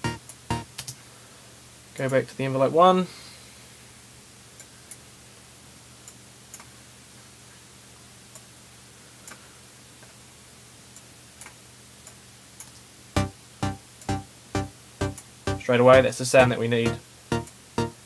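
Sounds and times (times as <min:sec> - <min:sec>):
low electrical hum: 0:00.0 - 0:18.0
computer mouse clicks: 0:06.0 - 0:06.7.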